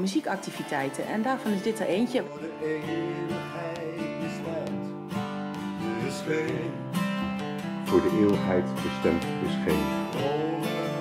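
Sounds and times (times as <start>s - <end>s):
acoustic guitars playing chords: 0.0s - 11.0s.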